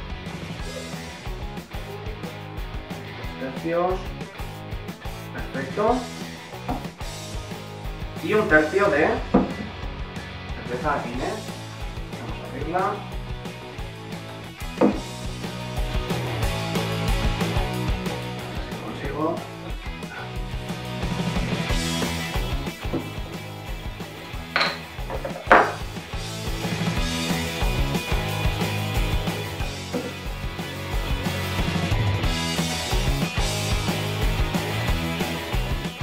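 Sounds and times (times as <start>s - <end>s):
background music with beat: 0.0s - 36.0s
bottle cap prised off clicks: 24.5s - 25.8s.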